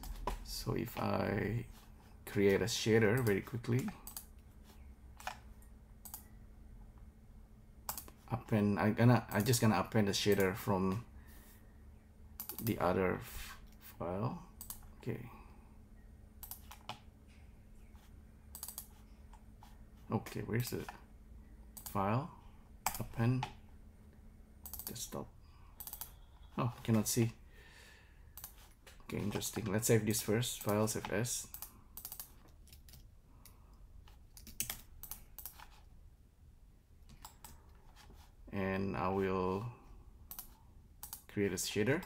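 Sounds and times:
computer keyboard and mouse clicking: 3.1 - 4.4, 5.2 - 5.4, 6.0 - 6.3, 7.9 - 8.2, 12.4 - 12.8, 14.6 - 14.9, 16.4 - 17.0, 18.5 - 19.4, 21.8 - 22.0, 22.8 - 23.6, 24.6 - 25.0, 25.8 - 26.5, 28.4 - 29.8, 30.6 - 35.8, 37.0 - 37.8, 40.3 - 41.3.

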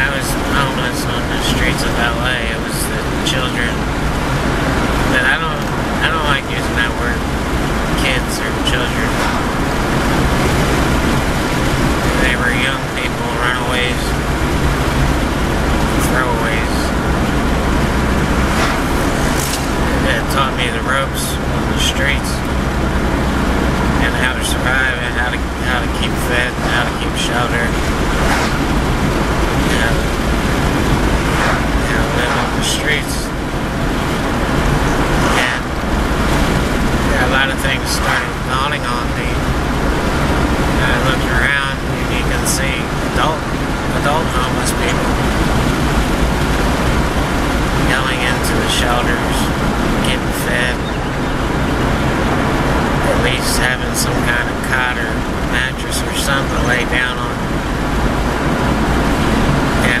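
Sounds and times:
man speaking: 0.0 - 3.9, 5.0 - 7.3, 7.9 - 9.6, 12.0 - 14.3, 15.8 - 17.3, 19.7 - 22.5, 23.9 - 28.5, 29.6 - 30.2, 31.3 - 33.4, 35.0 - 35.8, 37.0 - 39.6, 40.7 - 45.3, 47.8 - 50.9, 53.0 - 57.5, 59.7 - 60.0
person talking: 0.0 - 3.9, 5.0 - 7.2, 7.8 - 10.6, 12.0 - 14.3, 15.8 - 22.6, 23.8 - 28.4, 29.6 - 30.2, 31.3 - 33.4, 34.1 - 35.9, 36.9 - 39.6, 40.7 - 45.3, 47.8 - 51.0, 53.0 - 57.5, 59.7 - 60.0
car road and engine rumble: 0.0 - 60.0.

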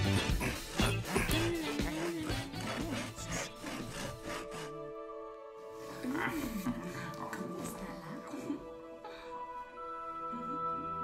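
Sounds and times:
background music: 0.0 - 11.0
hand saw cutting wood: 0.9 - 4.6.

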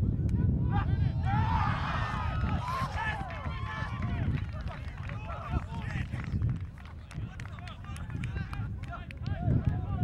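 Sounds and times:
people shouting and cheering: 0.4 - 6.0.

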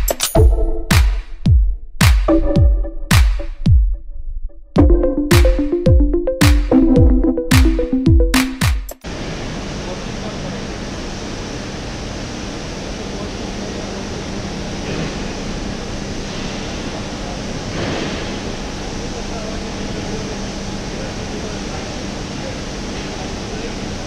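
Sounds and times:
conveyor running with low hum: 9.0 - 24.0.

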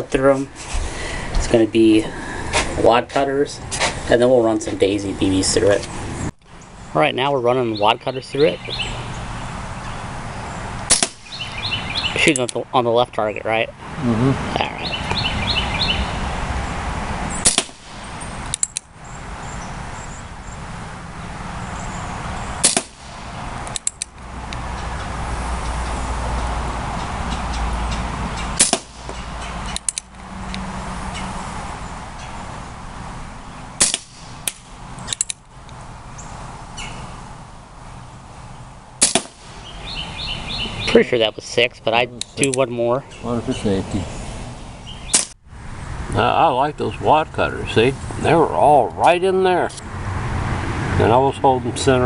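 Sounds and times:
air pistol shots: 10.9 - 11.4, 17.4 - 18.8, 22.6 - 23.9, 28.6 - 29.1, 33.8 - 35.3, 39.0 - 39.6.

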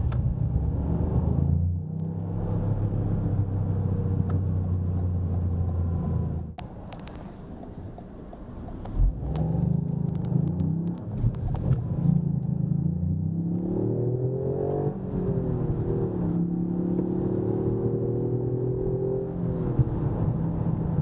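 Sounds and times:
car engine accelerating: 8.8 - 21.0.

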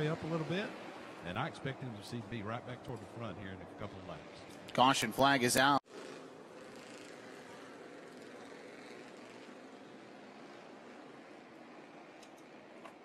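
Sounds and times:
race cars running: 0.0 - 13.0.

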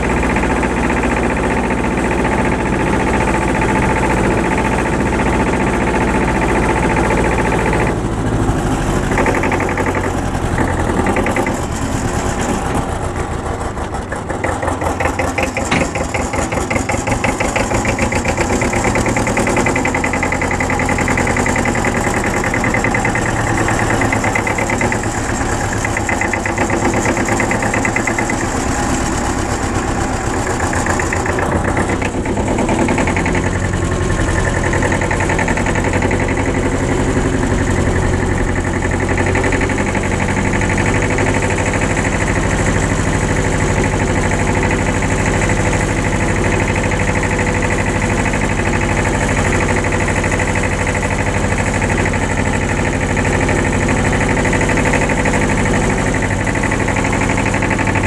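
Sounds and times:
tractor engine running: 0.0 - 58.0.

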